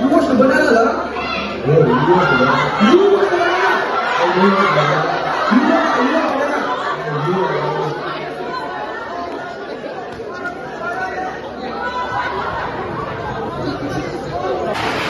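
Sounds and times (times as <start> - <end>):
crowd chattering in a hall: 0.0 - 15.0.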